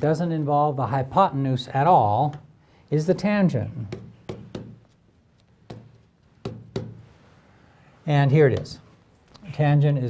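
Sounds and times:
stylus tapping on glass: 0:03.9 - 0:04.9, 0:05.6 - 0:07.1.

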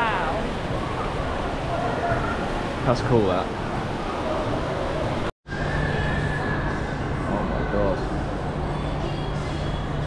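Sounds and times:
busy indoor mall din: 0:00.0 - 0:10.0.

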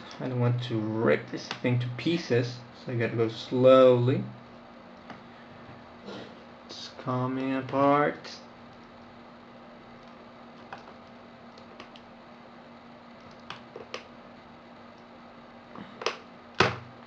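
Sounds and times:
cable peeling clicks and crackles: 0:10.0 - 0:12.1, 0:13.1 - 0:14.1.

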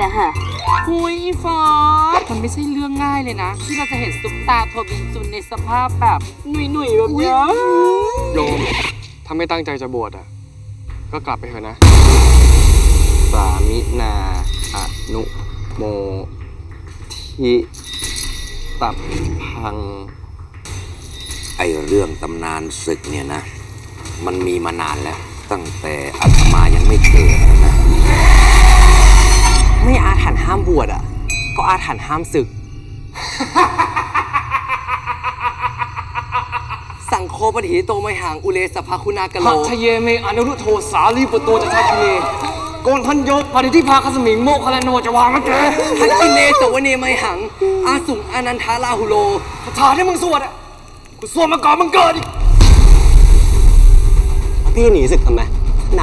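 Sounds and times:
deep rumble: 0:10.7 - 0:17.1, 0:26.2 - 0:33.2, 0:52.4 - 0:56.0
dense rushing noise: 0:11.8 - 0:14.8
deep cinematic bass boom: 0:11.8 - 0:15.8, 0:26.2 - 0:32.6, 0:52.4 - 0:56.0.

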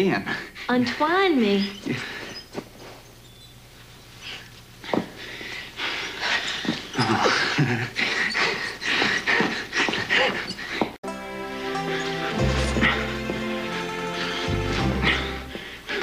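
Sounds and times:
man and woman grunting and gasping: 0:05.8 - 0:11.0, 0:14.2 - 0:16.0.

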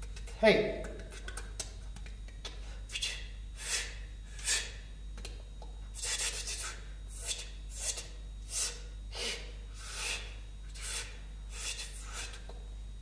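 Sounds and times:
low steady hum: 0:00.0 - 0:13.0
person exhaling breathily: 0:08.5 - 0:12.4.

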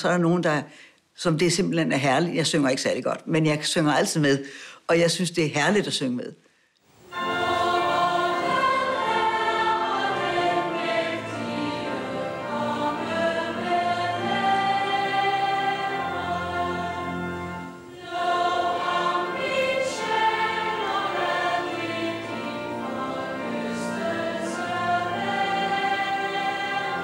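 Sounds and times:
congregation singing a hymn: 0:07.1 - 0:27.0.

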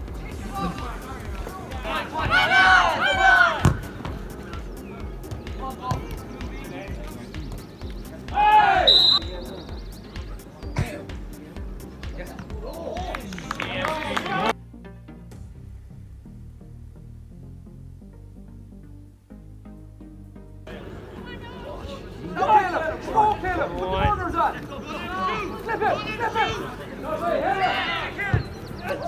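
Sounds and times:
people shouting: 0:01.7 - 0:03.8, 0:08.3 - 0:09.0, 0:24.2 - 0:29.0
ball being kicked: 0:03.6 - 0:04.2, 0:05.2 - 0:06.2.

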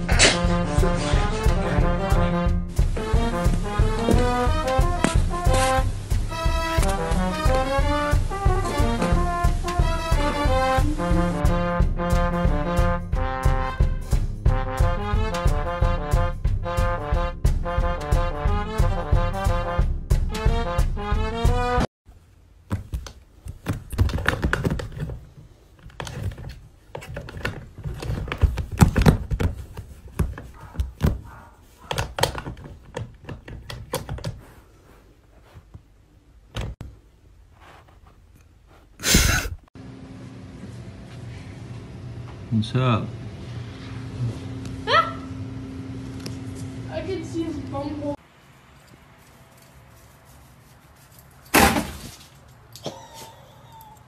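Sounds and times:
loud short bang: 0:51.5 - 0:52.1.

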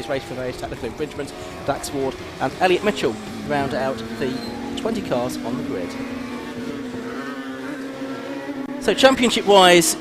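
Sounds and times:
racing car engines passing: 0:00.0 - 0:10.0.

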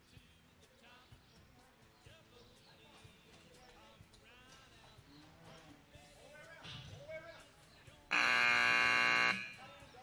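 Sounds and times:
loud buzzer blast: 0:08.1 - 0:09.6.

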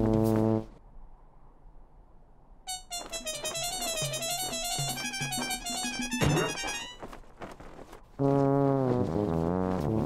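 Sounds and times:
background music: 0:02.7 - 0:07.0.

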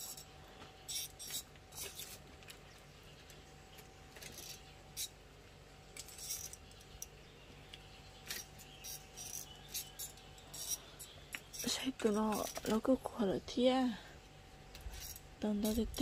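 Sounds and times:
low steady hum: 0:00.0 - 0:16.0
person speaking: 0:11.6 - 0:14.1.

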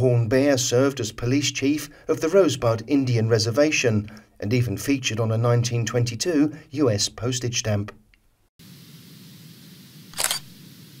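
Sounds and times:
camera shutter sound effect: 0:10.1 - 0:10.6.

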